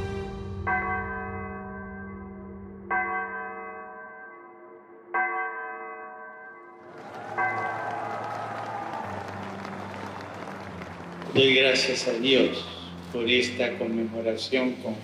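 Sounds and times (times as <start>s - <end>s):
deep church bell tolling: 0.1s - 8.2s.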